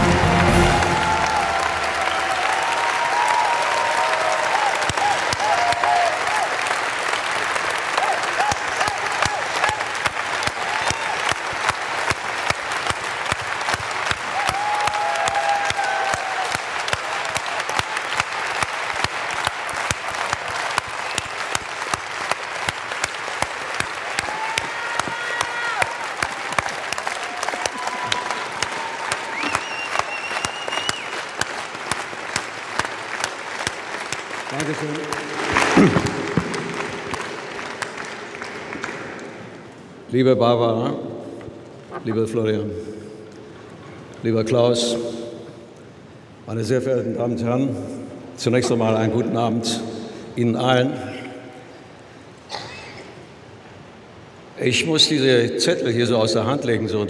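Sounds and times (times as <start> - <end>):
audience applauding: 0.0 - 40.1.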